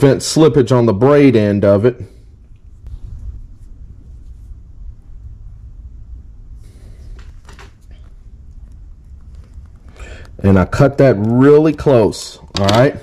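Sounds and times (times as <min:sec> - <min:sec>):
low steady rumble: 0:00.0 - 0:13.0.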